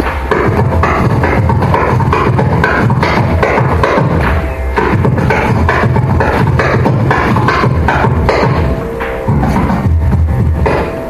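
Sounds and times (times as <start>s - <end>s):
deep bass thumps: 0.0s - 11.0s
electric mandolin melody: 0.0s - 11.0s
rhythmic drum strokes: 0.0s - 11.0s.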